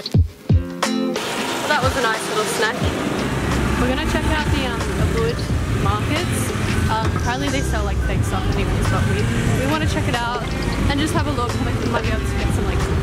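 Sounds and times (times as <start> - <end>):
people's voices: 1.2 - 13.0
traffic running past: 1.2 - 13.0
low engine rumble: 1.3 - 13.0.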